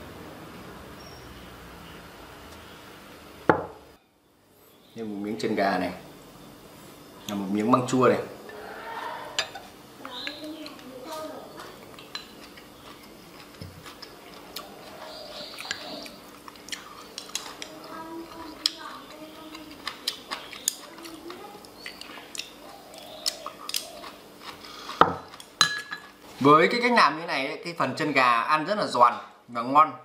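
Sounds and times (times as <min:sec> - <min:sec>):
crunching chewing: 0:10.1 - 0:26.2.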